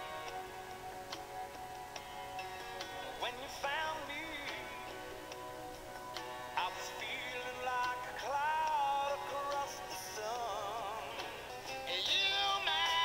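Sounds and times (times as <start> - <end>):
recorded song with lead vocal: 2.0 - 13.0.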